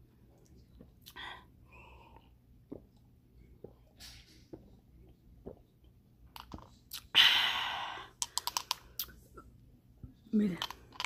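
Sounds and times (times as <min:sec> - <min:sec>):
sipping and swallowing: 0:02.6 - 0:07.1.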